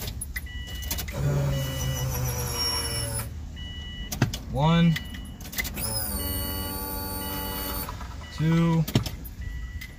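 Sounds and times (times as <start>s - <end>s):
fuel pump hum and whine: 5.8s - 8.2s.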